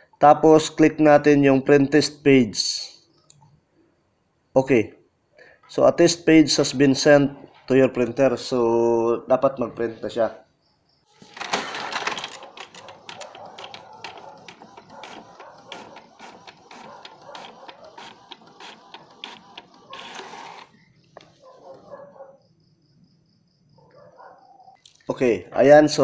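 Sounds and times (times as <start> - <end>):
print head carriage clicks: 11.4 - 20.7
inkjet printer printing: 12.0 - 21.9.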